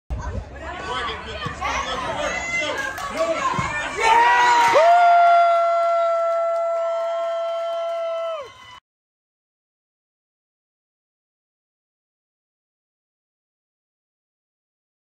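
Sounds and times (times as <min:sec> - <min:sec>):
spectators shouting and chattering: 0:00.1 - 0:08.8
crowd cheering: 0:01.4 - 0:08.8.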